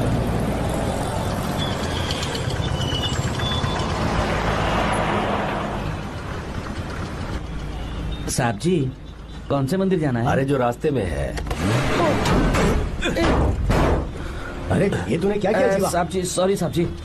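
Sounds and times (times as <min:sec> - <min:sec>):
road traffic din: 0:00.0 - 0:17.0.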